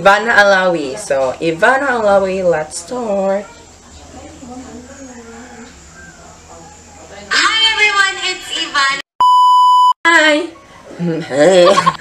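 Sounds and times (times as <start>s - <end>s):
high-pitched electronic beep: 9.2s - 10.0s.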